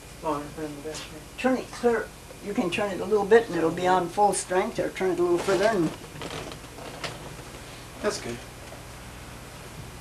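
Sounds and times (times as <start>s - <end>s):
electric fan humming: 0.0s - 10.0s.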